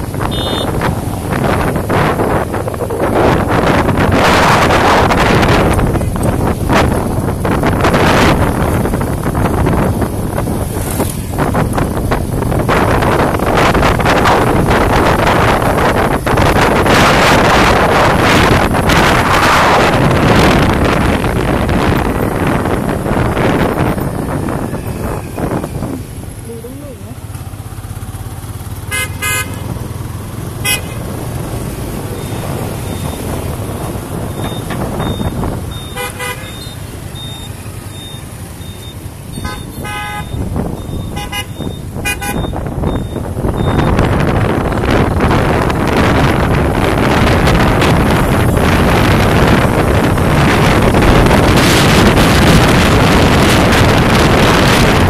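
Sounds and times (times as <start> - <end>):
wind buffeting microphone: 0.0 - 28.9, 29.5 - 55.0
low traffic hum: 0.0 - 55.0
vehicle horn toots: 0.2 - 0.9, 28.9 - 29.7, 30.6 - 31.0, 35.8 - 36.8, 39.3 - 42.6.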